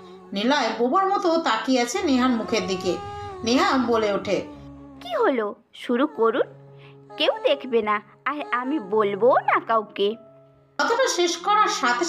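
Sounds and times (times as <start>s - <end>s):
background music notes: 1.7s - 12.0s
short vocal sound: 2.0s - 5.0s.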